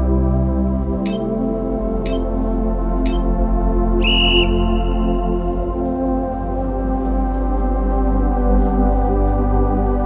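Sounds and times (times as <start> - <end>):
background music: 0.0 - 10.0
timer countdown beep: 2.1 - 2.3, 3.1 - 3.3
high whistle-like start tone: 4.0 - 5.3.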